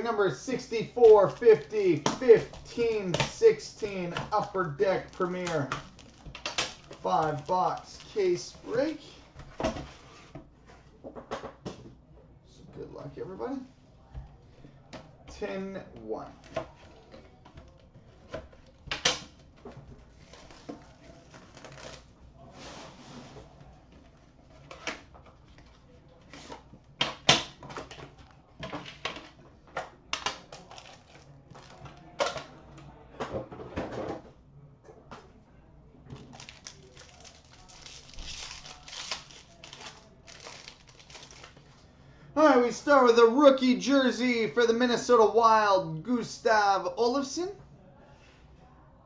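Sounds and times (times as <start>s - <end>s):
cardboard and plastic rustling: 0.0s - 11.0s, 16.4s - 26.8s, 30.3s - 32.4s, 36.1s - 41.9s.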